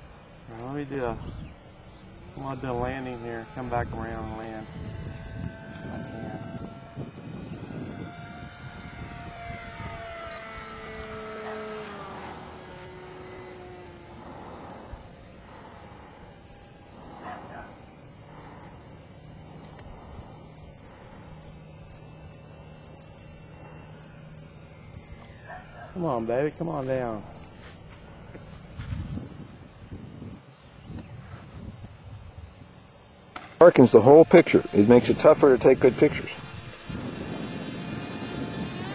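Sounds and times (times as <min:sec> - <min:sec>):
electric motor whine: 0:00.0 - 0:38.9.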